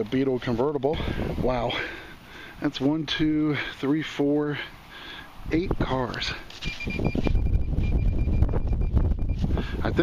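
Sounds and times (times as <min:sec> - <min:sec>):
wind buffeting microphone: 0:00.8 - 0:02.0, 0:06.7 - 0:10.0.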